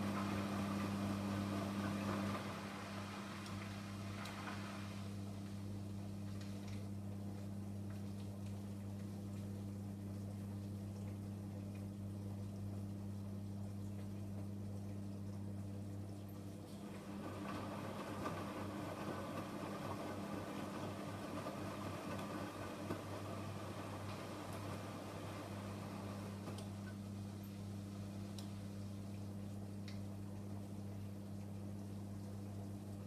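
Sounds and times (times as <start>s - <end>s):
laundry and water sloshing: 0.0s - 12.8s, 13.6s - 33.0s
drain pump humming: 0.0s - 33.0s.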